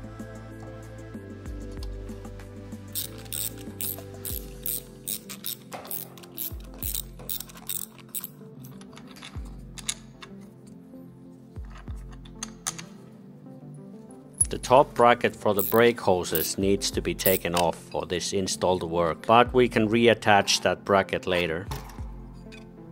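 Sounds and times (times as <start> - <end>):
background music: 0.0 - 22.9
ratchet wrench clicking: 2.9 - 10.0, 15.6 - 16.6, 17.2 - 17.6.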